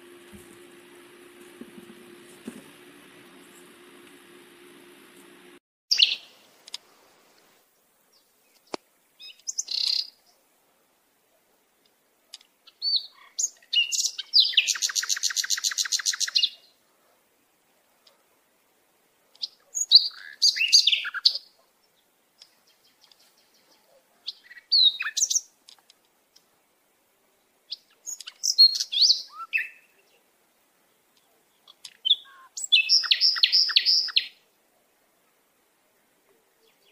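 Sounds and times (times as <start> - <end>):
birds chirping and singing: 31.6 - 34.3
bird trilling: 32.0 - 34.3.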